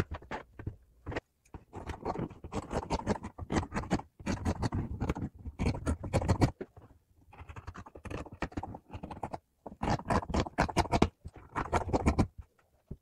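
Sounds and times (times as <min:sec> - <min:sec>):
scissors snipping fabric: 0:01.8 - 0:06.5.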